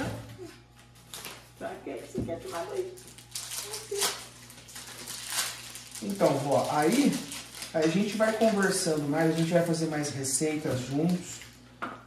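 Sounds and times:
plastic wrappers crinkling: 0:00.8 - 0:01.6, 0:02.4 - 0:11.6.

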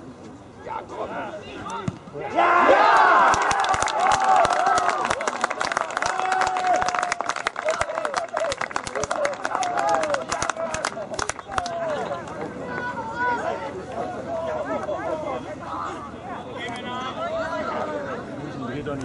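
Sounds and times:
crowd cheering and shouting: 0:02.2 - 0:15.3
people clapping: 0:03.0 - 0:12.9.

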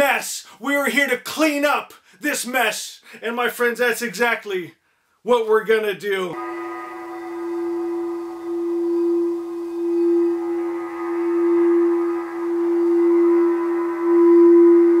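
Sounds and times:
crystal singing bowl tone: 0:06.4 - 0:15.0.

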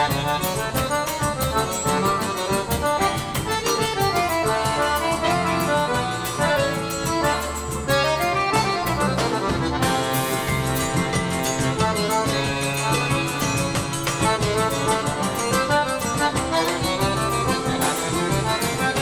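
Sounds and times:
accordion playing fast melody: 0:00.0 - 0:19.0
drum kit steady beat: 0:00.0 - 0:19.0
electric bass: 0:00.0 - 0:19.0.

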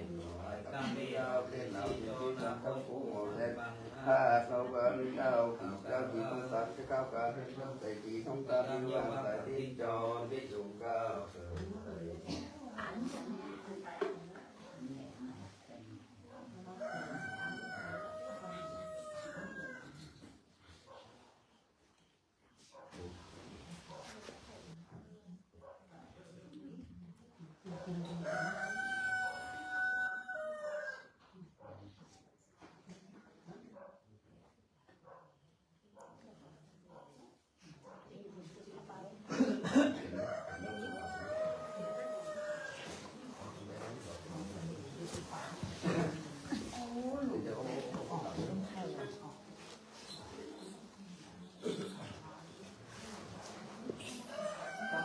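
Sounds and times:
rooster crowing: 0:16.8 - 0:20.0, 0:28.2 - 0:31.1, 0:40.2 - 0:43.0, 0:54.3 - 0:55.0.

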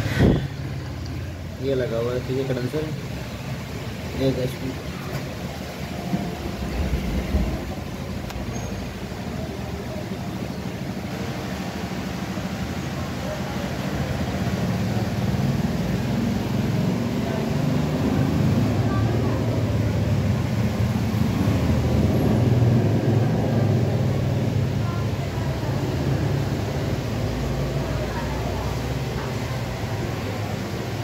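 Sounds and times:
refrigeration unit humming: 0:00.0 - 0:31.0.

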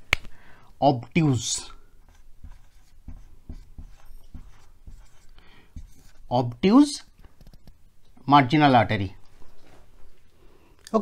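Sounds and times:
marker pen writing on whiteboard: 0:01.1 - 0:08.3.

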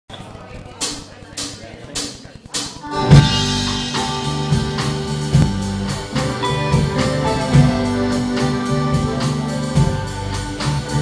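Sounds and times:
band playing: 0:01.4 - 0:11.0.

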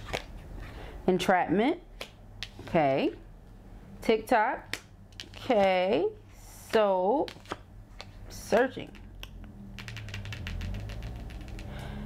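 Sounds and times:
fingernails tapping on cards: 0:07.3 - 0:11.9.

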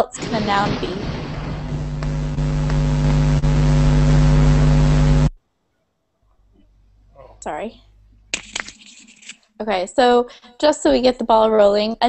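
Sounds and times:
loud buzzy hum: 0:01.0 - 0:05.4.

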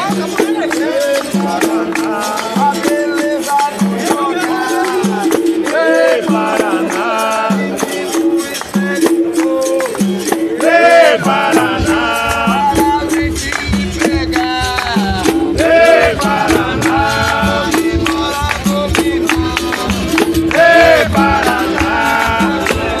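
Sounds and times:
voices singing: 0:00.0 - 0:23.0
frame drum beating: 0:11.2 - 0:23.0.

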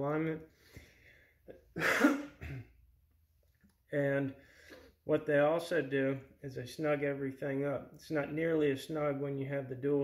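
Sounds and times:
man clearing throat: 0:01.7 - 0:02.8.

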